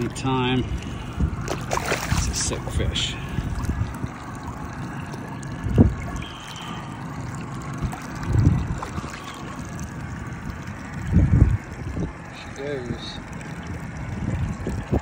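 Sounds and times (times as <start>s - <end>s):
water splashing and sloshing: 0.0s - 15.0s.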